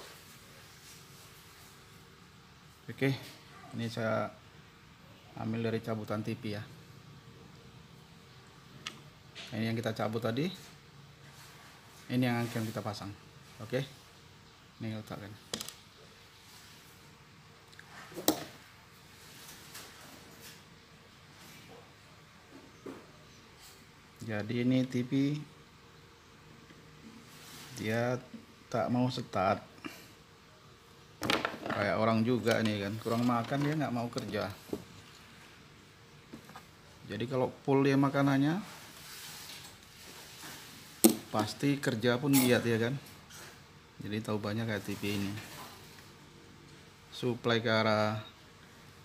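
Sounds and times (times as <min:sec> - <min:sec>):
faint room tone hiss: 0:00.0 - 0:49.0.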